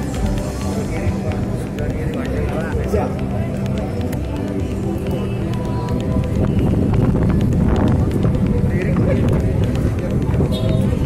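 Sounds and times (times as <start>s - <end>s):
crowd chatter and shuffling: 0.0s - 11.0s
music playing: 0.0s - 11.0s.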